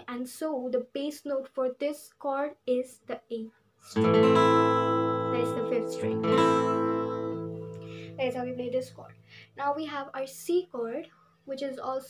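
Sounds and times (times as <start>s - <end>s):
acoustic guitar chord strum: 3.9s - 9.3s.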